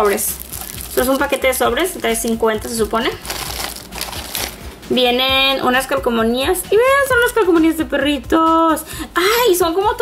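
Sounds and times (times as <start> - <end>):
plastic bag crinkling: 0.0 - 4.6.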